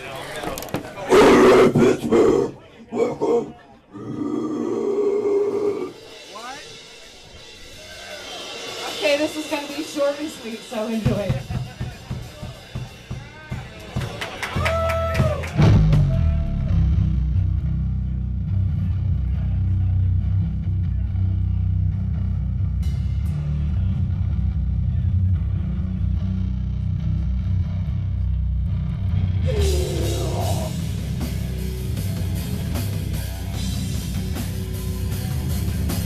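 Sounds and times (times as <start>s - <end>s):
death metal band playing: 1.1s - 13.5s, 28.8s - 36.0s.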